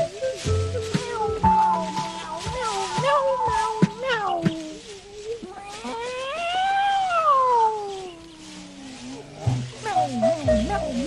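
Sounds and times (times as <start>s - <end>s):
cat meowing: 1.0s - 9.1s.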